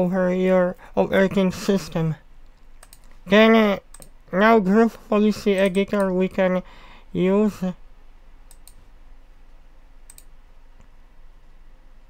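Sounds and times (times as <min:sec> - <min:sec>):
faint steady hum: 0:00.0 - 0:12.0
mouse button clicking: 0:10.1 - 0:10.3.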